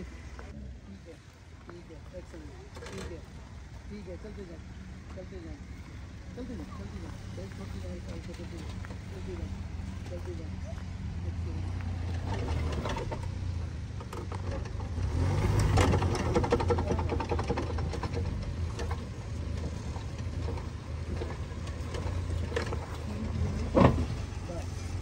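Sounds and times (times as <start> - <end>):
engine running at low revs: 0.0 - 25.0
tyres crunching over stones: 1.2 - 25.0.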